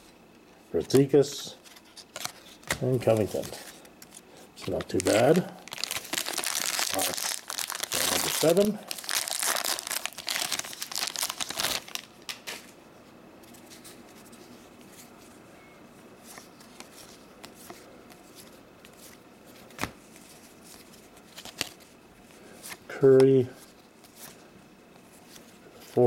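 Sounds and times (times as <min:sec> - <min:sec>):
plastic wrapper tearing and crinkling: 0:04.6 - 0:12.6.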